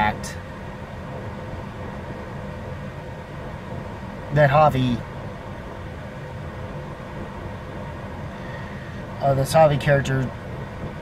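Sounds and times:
car engine rumble inside cabin: 0.0 - 11.0
faint steady whine: 0.0 - 11.0.

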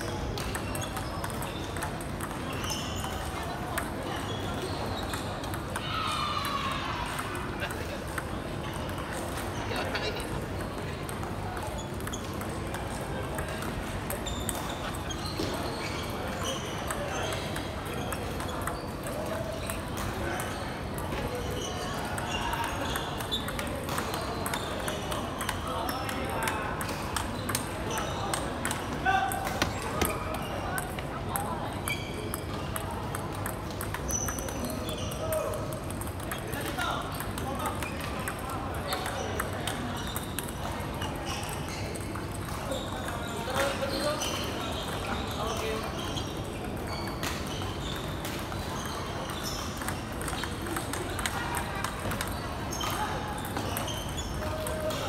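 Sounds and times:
background chatter: 0.0 - 55.0
table tennis balls clicking: 0.1 - 5.8, 7.1 - 55.0.

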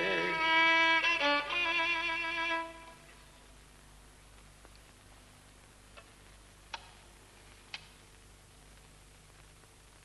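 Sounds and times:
faint steady hiss: 0.0 - 10.0.

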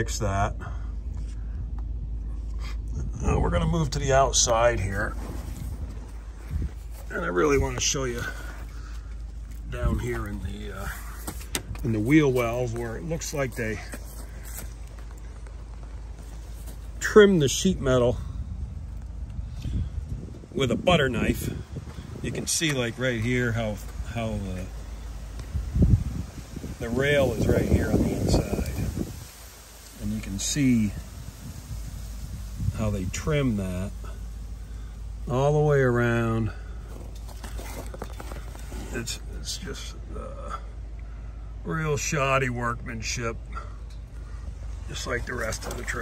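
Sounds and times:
wind rumble on microphone: 1.4 - 4.0, 4.7 - 8.8, 16.0 - 35.3.

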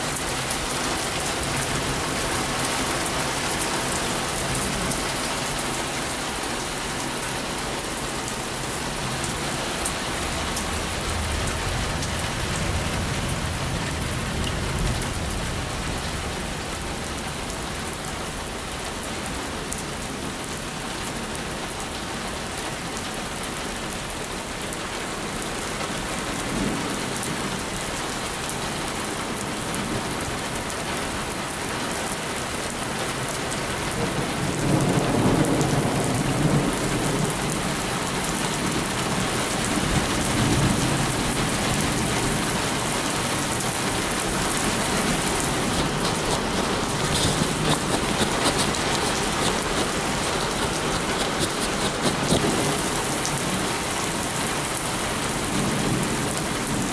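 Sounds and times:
heavy rain pouring on pavement: 0.0 - 56.9
thunder rumbling: 38.8 - 53.8.

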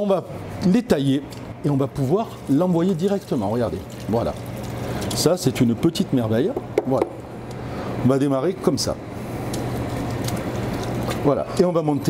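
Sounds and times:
crackling sizzle in a pot: 2.1 - 6.1, 9.4 - 11.3.

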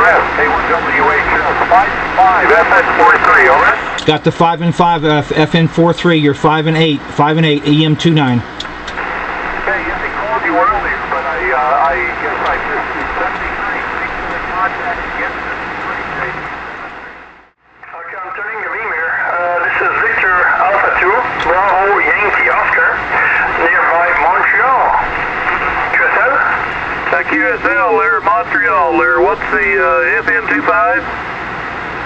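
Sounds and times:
person talking over radio: 0.0 - 16.5, 17.9 - 31.0
distant radio voice: 0.0 - 16.6, 17.9 - 31.1
radio band hiss: 0.0 - 17.2, 17.8 - 32.0.

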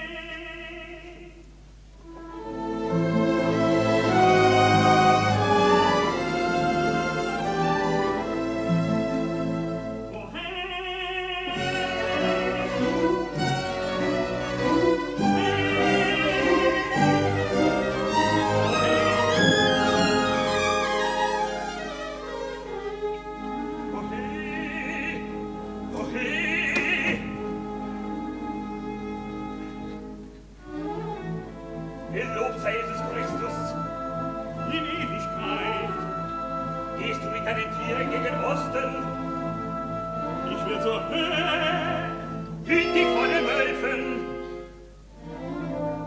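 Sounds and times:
orchestra with bowed strings: 2.0 - 10.4, 11.5 - 46.0.

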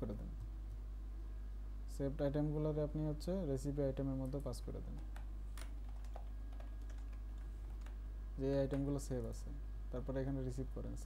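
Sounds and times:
steady low hum: 0.0 - 11.0
keyboard keystrokes: 4.9 - 8.0.

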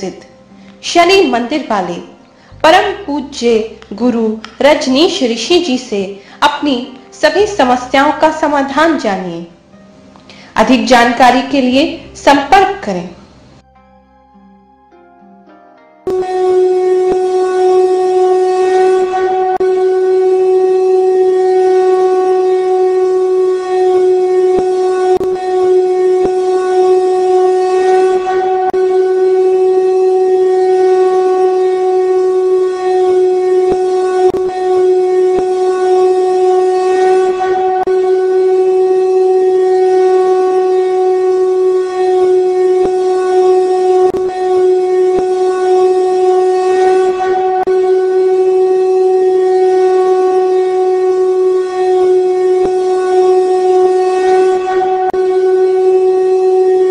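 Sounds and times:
loud steady drone: 0.0 - 13.6, 16.1 - 56.9.

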